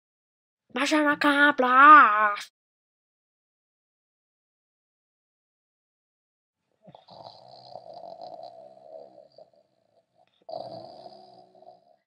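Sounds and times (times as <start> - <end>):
person snoring: 6.9 - 12.0.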